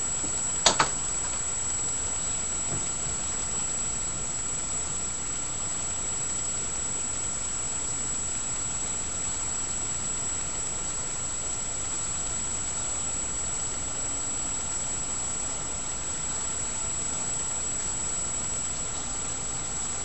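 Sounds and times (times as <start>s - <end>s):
background hum and hiss: 0.0s - 20.0s.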